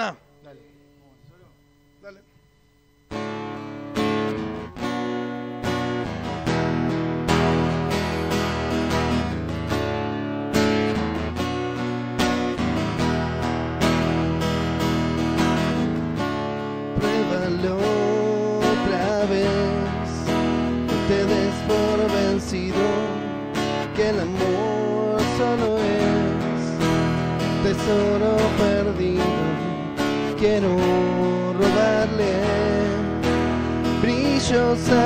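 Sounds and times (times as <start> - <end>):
acoustic guitar strumming: 3.0 - 35.0.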